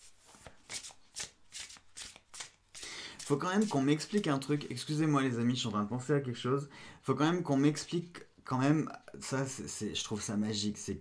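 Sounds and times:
cards being shuffled: 0:00.0 - 0:05.0.

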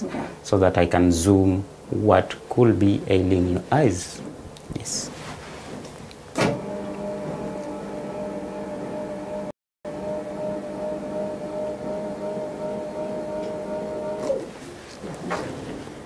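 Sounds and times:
electric chair motor whining: 0:06.4 - 0:14.7.

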